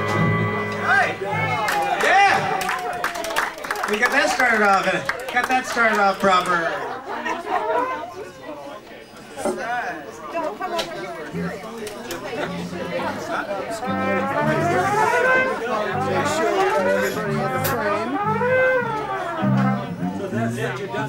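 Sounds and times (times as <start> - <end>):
trombone slide glissandos: 0.0 - 1.5, 12.6 - 20.6
low bass notes: 0.0 - 1.6, 13.8 - 21.0.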